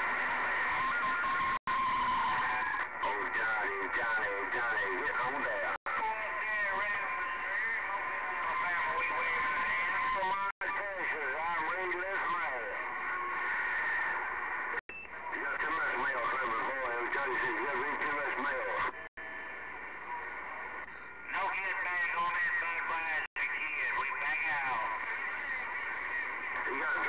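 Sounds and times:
garbled radio voices: 0.0s - 27.0s
radio static: 0.0s - 27.0s.

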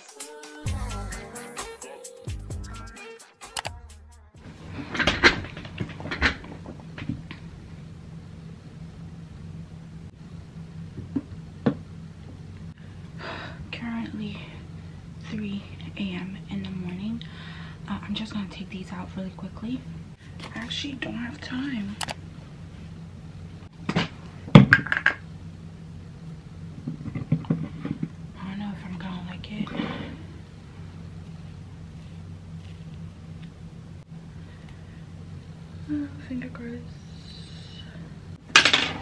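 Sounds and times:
steady low hum: 0.0s - 3.0s, 3.6s - 39.0s
low music: 0.0s - 4.4s.

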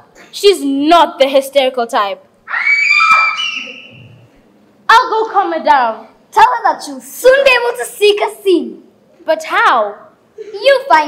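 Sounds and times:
child screaming: 2.5s - 4.1s.

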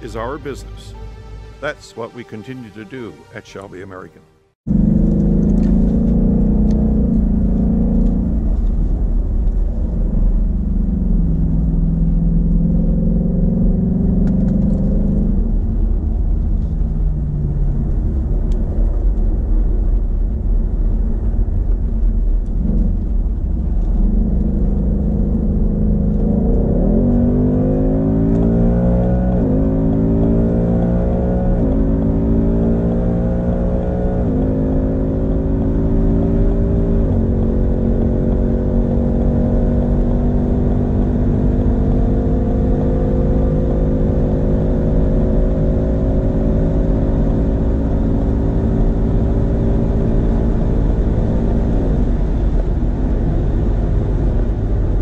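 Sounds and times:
car engine revving through gears: 4.7s - 15.8s, 22.4s - 55.0s.

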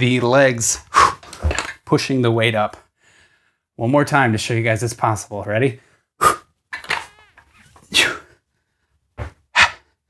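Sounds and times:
man exhaling forcefully: 6.2s - 6.5s.

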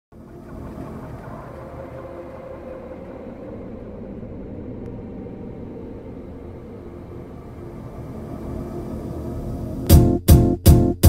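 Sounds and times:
low rumbling drone: 0.1s - 10.2s.

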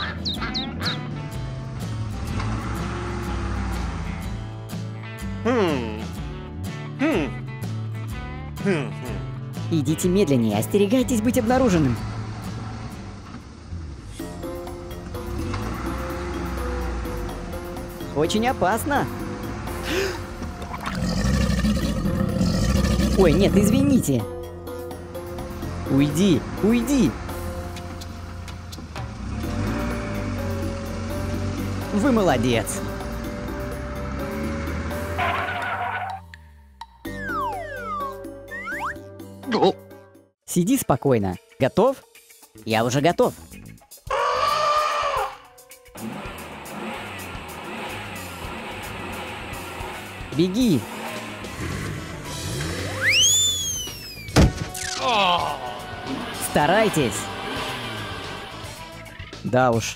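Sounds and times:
background music: 0.0s - 59.9s
car engine sound effect: 25.2s - 38.3s, 46.0s - 55.0s, 55.6s - 59.4s.

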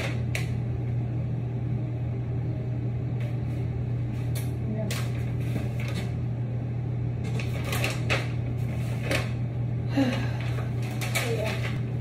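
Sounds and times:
low mechanical hum: 0.0s - 12.0s
paper leaflet rustling: 7.2s - 9.4s.

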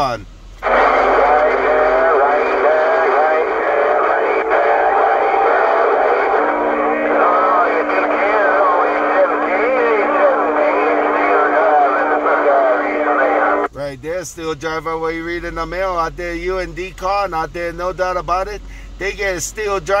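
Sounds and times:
garbled radio voices: 0.6s - 13.7s
steady heterodyne tones: 0.6s - 13.7s
radio hiss: 0.6s - 13.9s.

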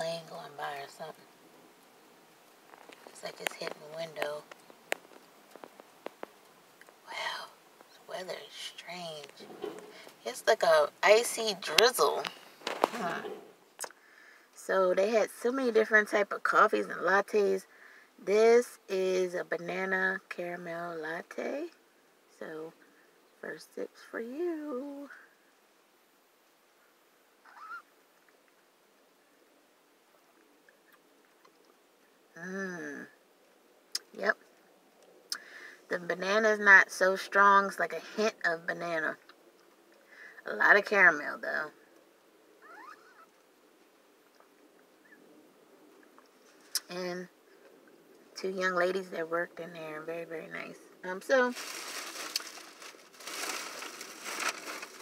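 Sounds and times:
bag rustling and crinkling: 2.6s - 7.0s, 12.2s - 13.6s, 51.3s - 55.0s.

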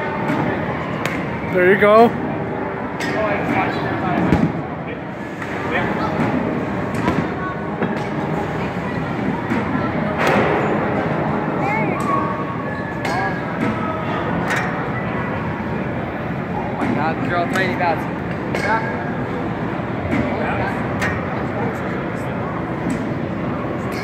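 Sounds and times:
background chatter: 0.0s - 24.0s.

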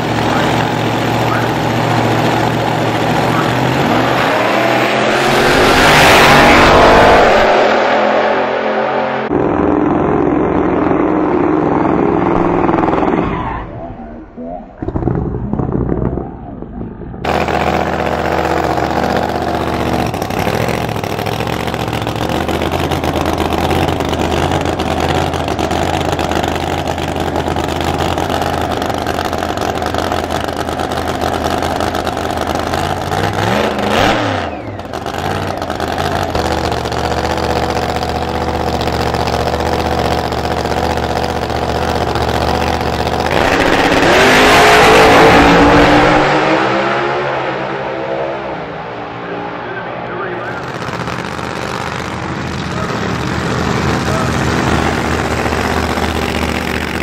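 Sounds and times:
racing car engine idling: 0.0s - 4.8s, 14.2s - 44.3s, 48.7s - 57.0s
racing car launching full throttle: 0.0s - 57.0s.

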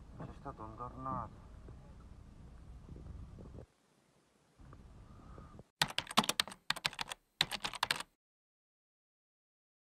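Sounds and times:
rapid sharp clattering clicks: 5.8s - 8.1s.

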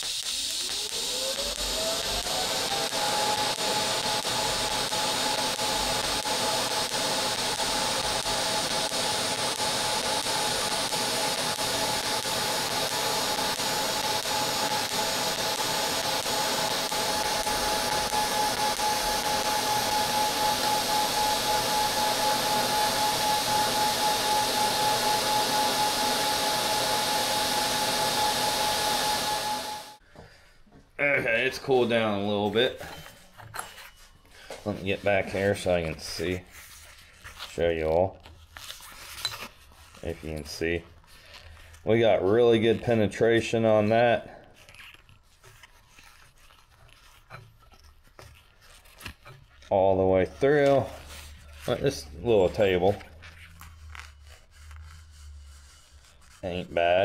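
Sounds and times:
welding arc hissing and whining: 0.0s - 30.0s, 49.7s - 53.4s.

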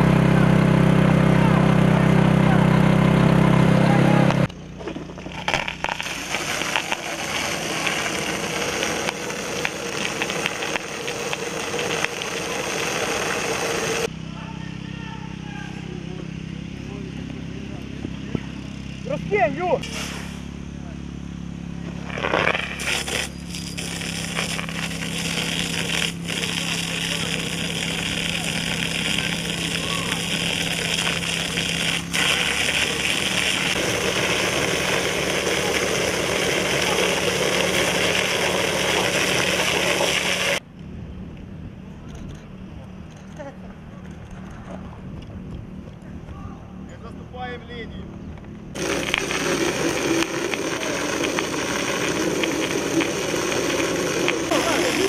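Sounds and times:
pump engine running: 0.0s - 14.1s, 19.2s - 40.6s, 48.7s - 55.0s
water jets hissing from hoses: 5.4s - 14.1s, 19.8s - 20.4s, 22.1s - 40.6s, 48.8s - 55.0s.

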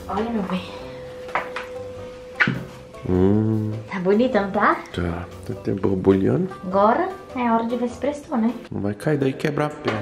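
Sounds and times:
background music steady note: 0.0s - 10.0s.

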